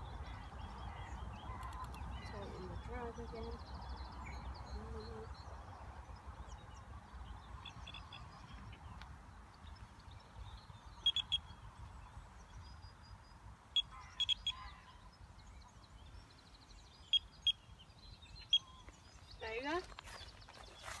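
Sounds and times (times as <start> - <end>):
bite alarm bleeps: 11.1 - 11.4, 13.8 - 14.6.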